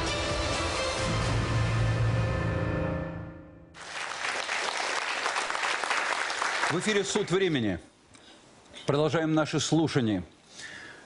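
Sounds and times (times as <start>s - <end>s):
theme music: 0.0s - 3.8s
studio audience applause: 3.8s - 7.4s.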